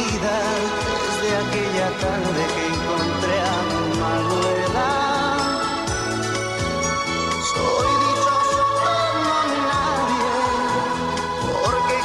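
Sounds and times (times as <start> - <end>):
pop ballad with sung melody: 0.0 - 12.0.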